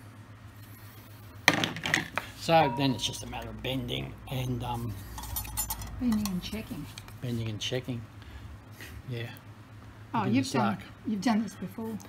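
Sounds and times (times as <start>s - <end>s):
low room hum: 0.0s - 12.0s
sharp metallic clank: 2.5s - 3.4s
metal clinks with ringing: 2.6s - 3.4s.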